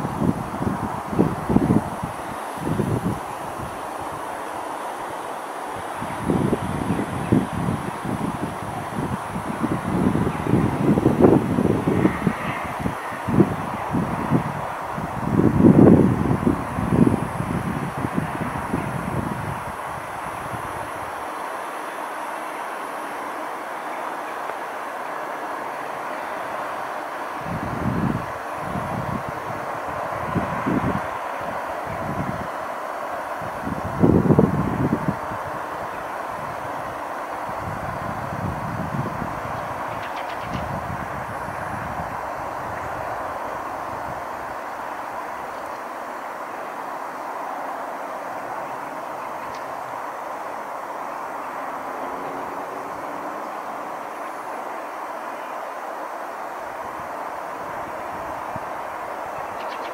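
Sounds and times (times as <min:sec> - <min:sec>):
wind buffeting microphone: 0:00.0 - 0:05.1, 0:05.7 - 0:21.4, 0:26.0 - 0:45.8
distant traffic hum: 0:00.0 - 0:59.9.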